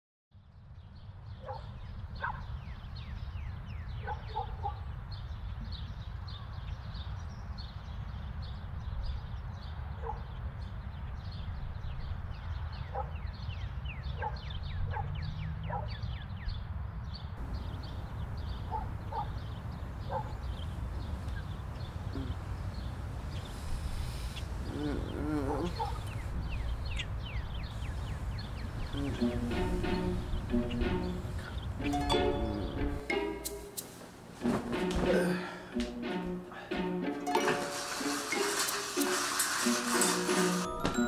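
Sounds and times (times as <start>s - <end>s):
small birds chirping: 0.4s - 33.8s
low animal calls: 22.1s - 22.5s, 24.1s - 27.1s, 28.6s - 31.6s.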